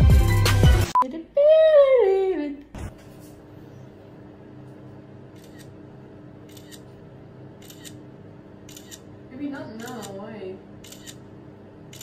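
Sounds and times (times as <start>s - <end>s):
phone camera shutter clicks: 6.5s - 6.8s, 7.6s - 8.0s, 8.7s - 9.0s, 10.8s - 11.2s.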